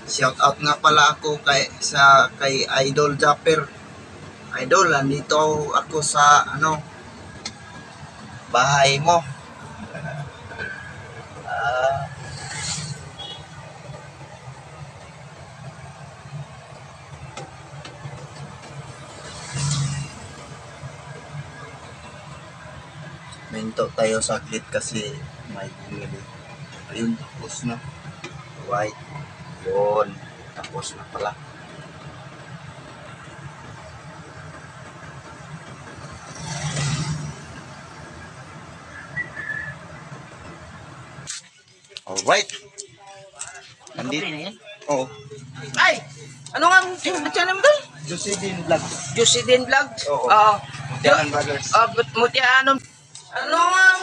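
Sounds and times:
vehicle engine idling: 0.0 - 44.2, 44.9 - 54.0.

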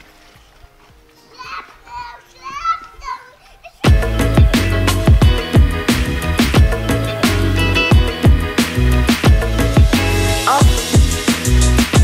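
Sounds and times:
music: 0.0 - 12.0
child calling out: 1.3 - 3.7.

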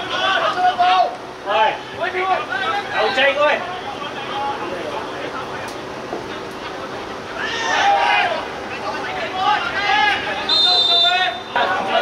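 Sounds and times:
players shouting: 0.0 - 12.0
referee's whistle blast: 10.4 - 11.6.

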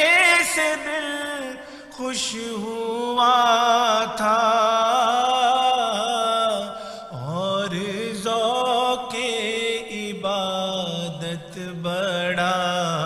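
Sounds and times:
man chanting melodically: 0.0 - 13.0.

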